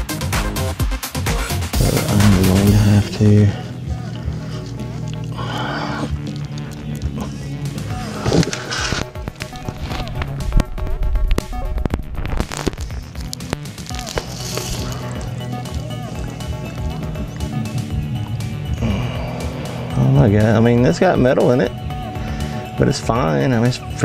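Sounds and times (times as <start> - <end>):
background music: 0.0 - 24.0.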